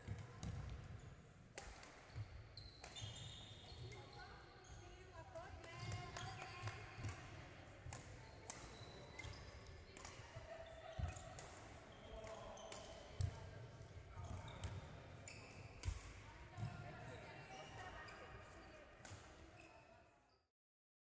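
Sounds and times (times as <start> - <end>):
racket hitting shuttlecock: 1.6 - 2.0, 15.8 - 16.1
shoe squeaks: 2.1 - 7.0, 14.1 - 16.1.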